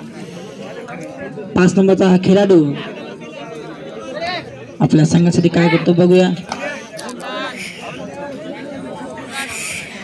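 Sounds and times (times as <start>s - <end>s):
crowd talking and calling out: 0.0s - 10.0s.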